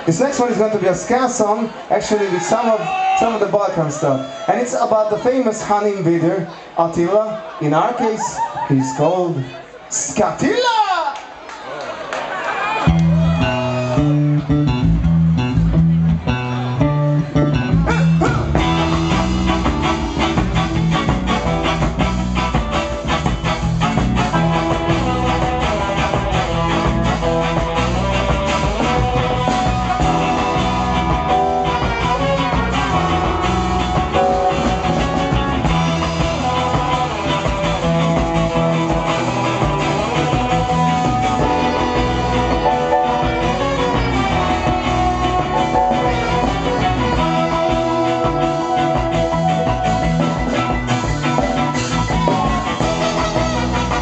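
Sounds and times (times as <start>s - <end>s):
bass guitar: 0.0s - 5.8s, 12.8s - 54.0s
electric guitar: 12.8s - 54.0s
live ska band: 12.8s - 54.0s
horn section: 16.4s - 54.0s.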